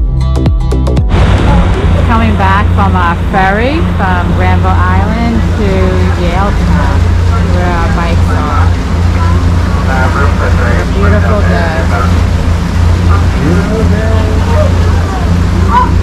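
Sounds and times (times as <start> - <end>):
ferry engine humming: 1.0 - 16.0
indistinct voices: 1.1 - 16.0.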